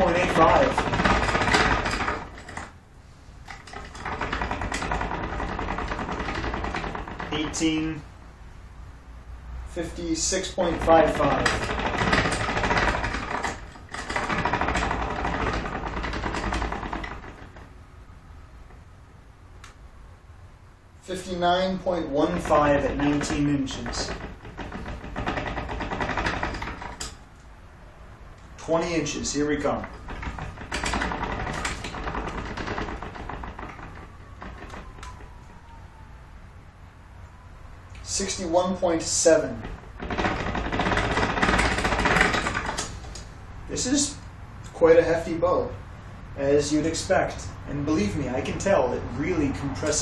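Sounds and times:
ratchet clicking: 0:22.3 - 0:27.3.

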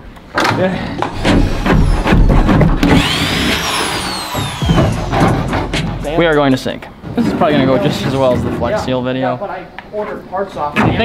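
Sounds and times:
music: 0:04.4 - 0:06.7.

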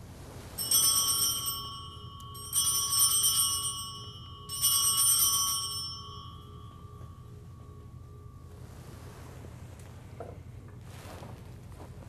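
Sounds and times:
altar bells jingling: 0:00.6 - 0:09.0.

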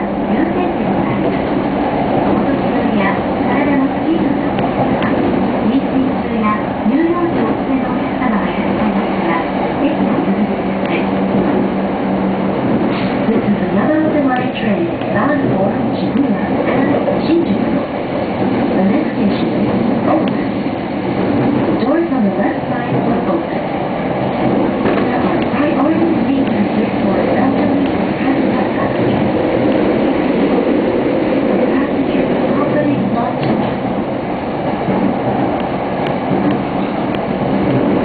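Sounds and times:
electric train rumbling: 0:00.0 - 0:38.0.

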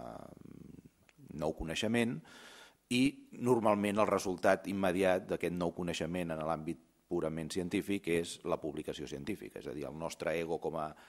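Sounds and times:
man talking into a microphone: 0:00.0 - 0:02.3, 0:02.9 - 0:11.0.

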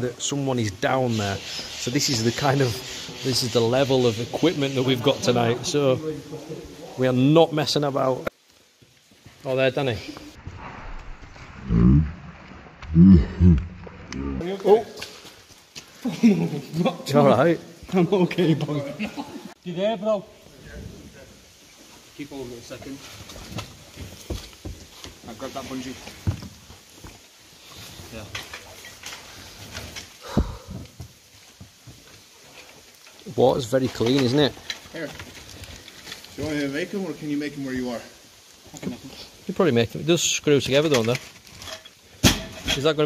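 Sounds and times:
man grunting with effort: 0:12.9 - 0:13.7.

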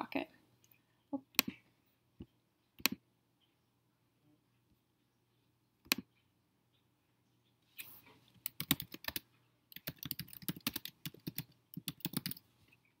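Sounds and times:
typing on keyboard: 0:08.4 - 0:12.4.

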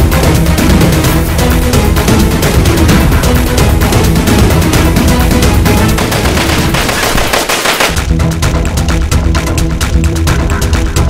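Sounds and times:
machine-gun fire: 0:05.8 - 0:08.1.

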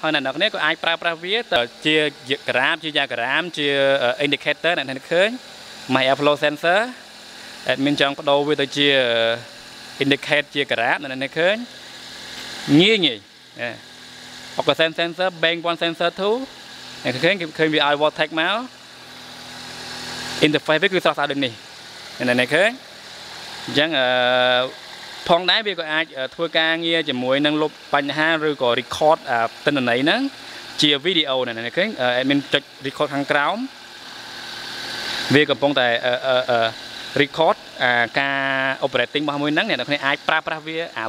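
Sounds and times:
man talking: 0:00.0 - 0:07.0, 0:07.6 - 0:11.8, 0:12.7 - 0:13.8, 0:14.6 - 0:18.8, 0:20.4 - 0:21.6, 0:22.2 - 0:22.8, 0:23.7 - 0:33.7, 0:35.3 - 0:41.0
car engine idling: 0:11.3 - 0:27.0.

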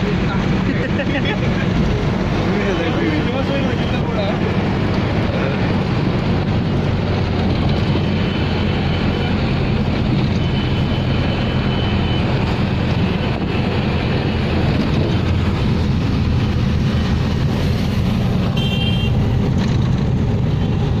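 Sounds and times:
road and wind noise: 0:00.0 - 0:21.0.

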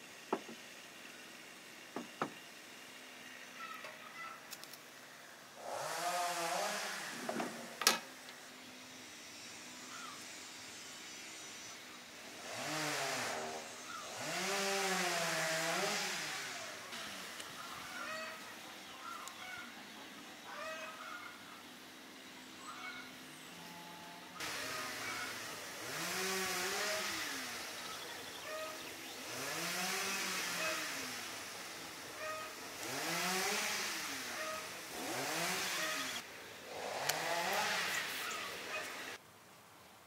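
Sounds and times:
distant engine revving: 0:05.5 - 0:07.8, 0:12.2 - 0:18.7, 0:24.4 - 0:39.2
birds chirping: 0:16.8 - 0:31.4, 0:35.7 - 0:36.2, 0:37.5 - 0:39.2.

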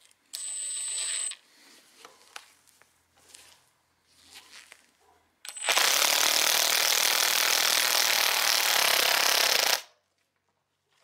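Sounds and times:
cordless drill running: 0:00.4 - 0:01.4, 0:05.5 - 0:09.9.

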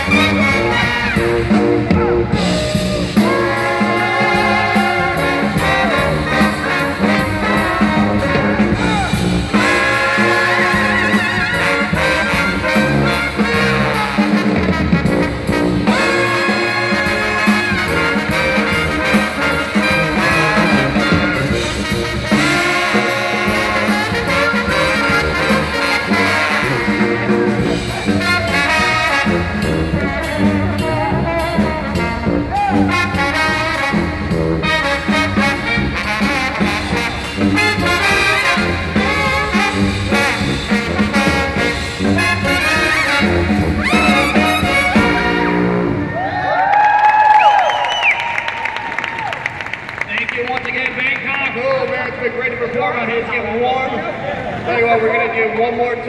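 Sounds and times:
brass band playing jazz: 0:00.0 - 0:46.7.

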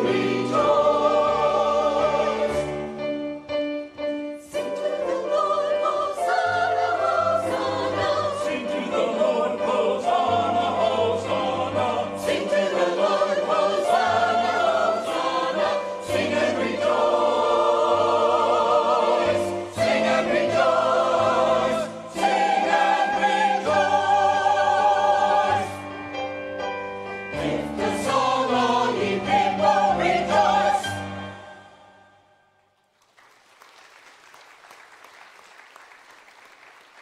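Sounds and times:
choir singing in parts: 0:00.0 - 0:03.2, 0:04.4 - 0:26.2, 0:27.3 - 0:32.3.

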